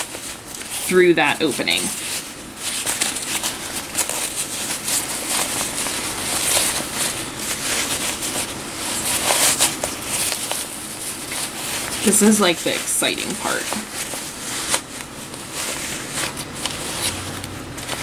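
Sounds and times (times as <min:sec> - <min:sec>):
fabric rustling and crinkling: 0:00.0 - 0:18.0.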